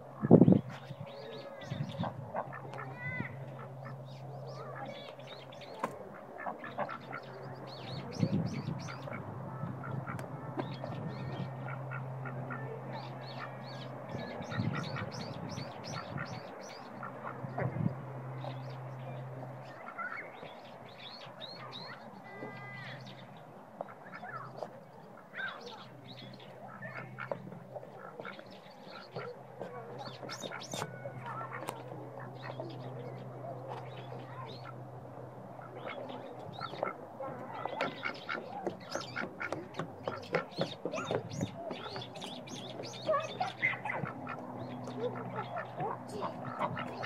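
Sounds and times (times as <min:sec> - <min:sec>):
ducks quacking: 0:00.0 - 0:23.1, 0:23.8 - 0:47.0
low steady hum: 0:00.0 - 0:47.0.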